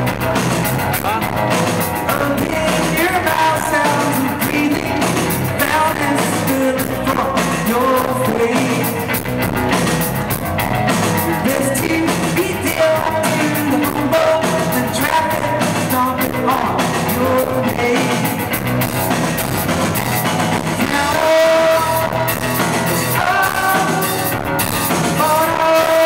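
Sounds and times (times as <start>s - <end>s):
live rock band playing: 0.0s - 26.0s
sung vocal melody: 0.0s - 26.0s.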